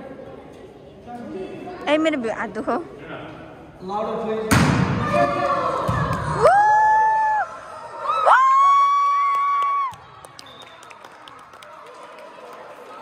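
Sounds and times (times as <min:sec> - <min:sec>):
faint gym hubbub: 0:00.0 - 0:09.0
high-pitched cheering shouts: 0:05.1 - 0:10.5.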